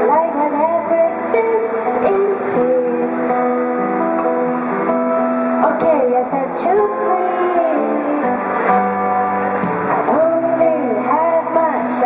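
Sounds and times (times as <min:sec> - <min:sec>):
woman singing: 0:00.0 - 0:03.8, 0:05.6 - 0:08.5, 0:10.0 - 0:12.0
acoustic guitar strumming: 0:00.0 - 0:12.0.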